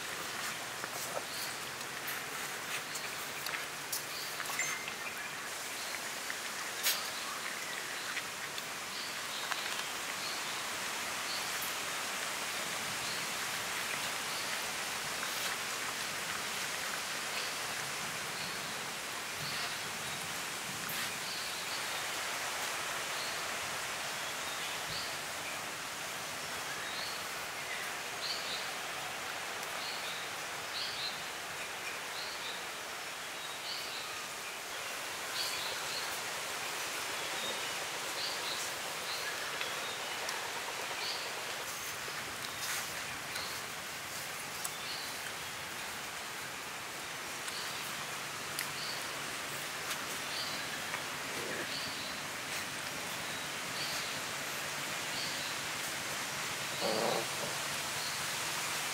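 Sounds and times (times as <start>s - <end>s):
steady woodland hiss: 0.0s - 58.9s.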